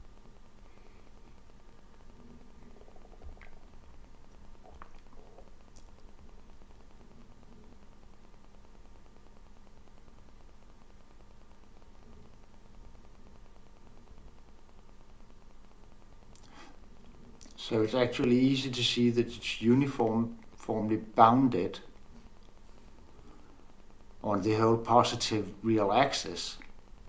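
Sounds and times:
faint ticks: 0:00.0 - 0:18.4, 0:21.8 - 0:24.3, 0:26.6 - 0:27.0
faint hiss: 0:00.0 - 0:27.0
low hum: 0:00.0 - 0:27.0.

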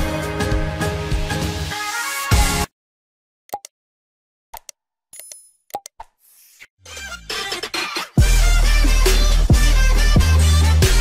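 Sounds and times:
music with a beat: 0:07.3 - 0:11.0.

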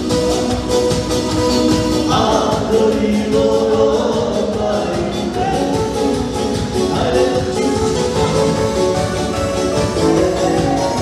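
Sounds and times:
live band playing dance music: 0:00.0 - 0:11.0
person singing: 0:02.0 - 0:08.8, 0:10.0 - 0:11.0.

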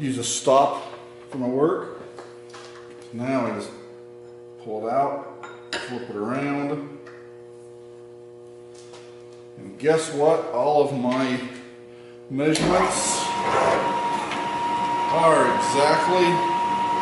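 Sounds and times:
steady electrical hum: 0:00.0 - 0:17.0
man speaking indistinctly: 0:09.6 - 0:11.6, 0:12.3 - 0:13.4, 0:15.1 - 0:16.5.

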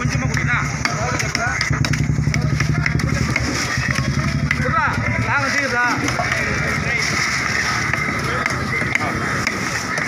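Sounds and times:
engine idling: 0:00.0 - 0:10.0
voices: 0:00.0 - 0:10.0.

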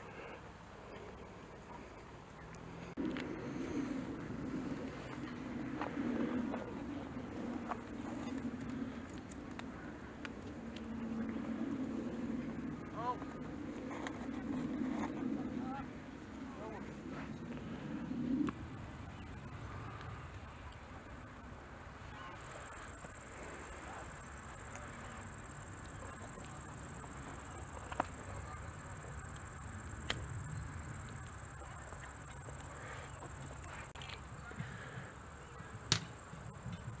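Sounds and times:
crickets buzzing: 0:17.8 - 0:37.0.

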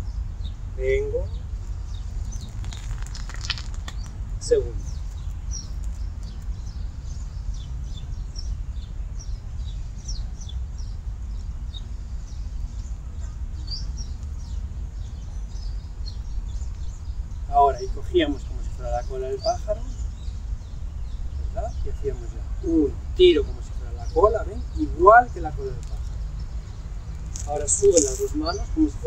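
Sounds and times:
small birds chirping: 0:00.0 - 0:29.0
steady low rumble: 0:00.0 - 0:29.0.

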